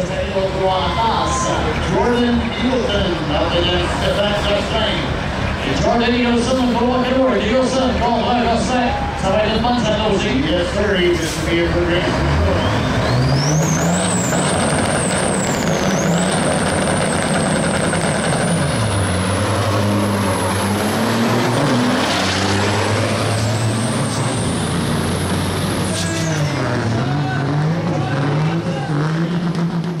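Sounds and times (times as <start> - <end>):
diesel trucks at full throttle: 0.0 - 30.0.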